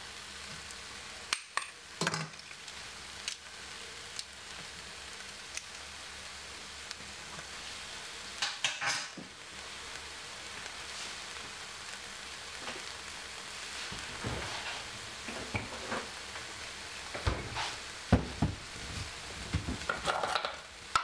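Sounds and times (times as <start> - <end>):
faint sizzle from a pot: 0.0 - 21.0.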